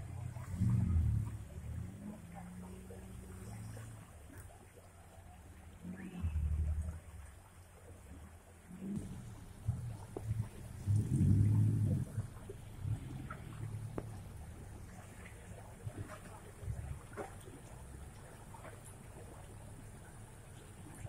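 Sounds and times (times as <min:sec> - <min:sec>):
distant off-road engine revving: 0:00.0 - 0:04.3, 0:08.7 - 0:18.2.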